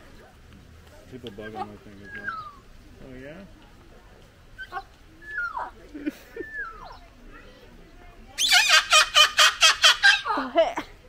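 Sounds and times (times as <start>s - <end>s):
cockatoo calling: 1.2s - 2.8s, 4.6s - 7.1s, 8.4s - 10.4s.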